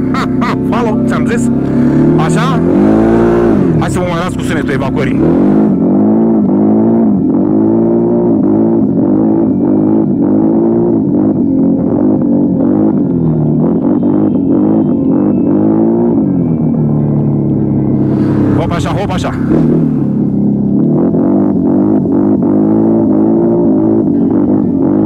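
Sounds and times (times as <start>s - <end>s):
atv engine revving: 0.0s - 25.0s.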